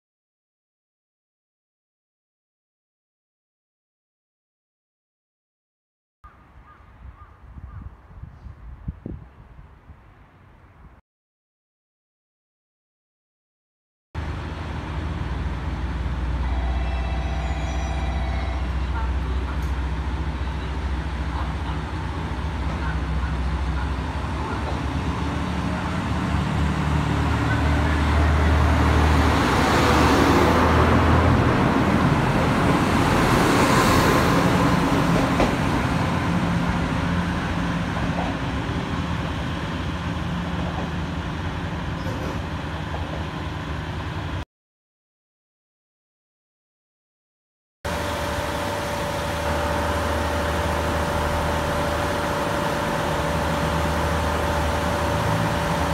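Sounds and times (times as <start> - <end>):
diesel railcar engine: 14.2 - 44.4, 47.9 - 55.9.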